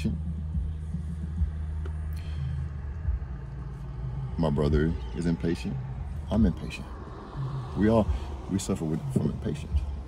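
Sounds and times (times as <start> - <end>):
vehicle rumble inside car: 0.0 - 10.0.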